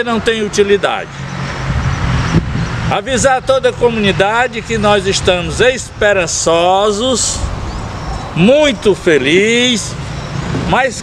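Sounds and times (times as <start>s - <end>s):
motor vehicle running: 0.0s - 11.0s
road noise: 0.0s - 11.0s.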